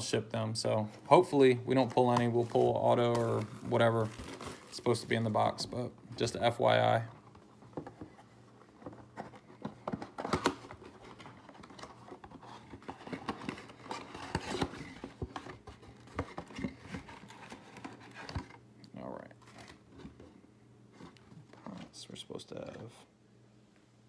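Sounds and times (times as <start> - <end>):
cardboard rustling and tearing: 1.7 - 5.5, 8.8 - 18.6.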